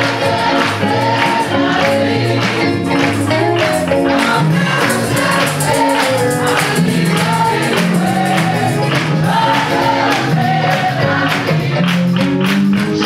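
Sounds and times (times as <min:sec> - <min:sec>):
group singing gospel song: 0:00.0 - 0:12.5
hand claps: 0:00.0 - 0:13.0.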